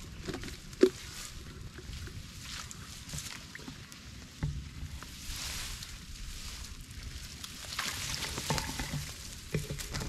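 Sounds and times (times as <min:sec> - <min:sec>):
grass rustling: 0:00.0 - 0:10.0
shallow water sloshing: 0:04.6 - 0:10.0.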